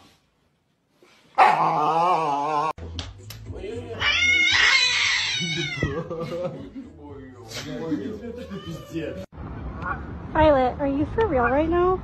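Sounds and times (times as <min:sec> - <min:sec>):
cat meowing: 0:04.0 - 0:06.0.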